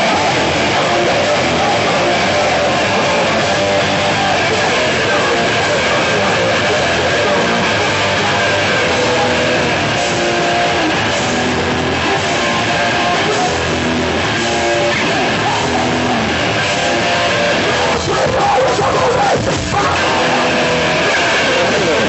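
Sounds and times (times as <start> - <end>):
bass guitar: 0.0 - 22.0
distorted electric guitars: 0.0 - 22.0
drums: 0.0 - 22.0.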